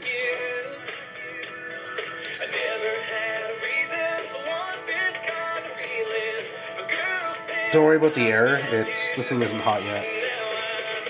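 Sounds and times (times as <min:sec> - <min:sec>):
distorted radio music with singing: 0:00.0 - 0:11.0.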